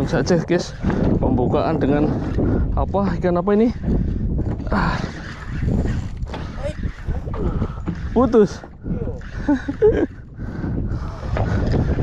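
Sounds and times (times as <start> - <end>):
sea noise: 0.0 - 12.0
wind rumbling on microphone: 0.0 - 12.0.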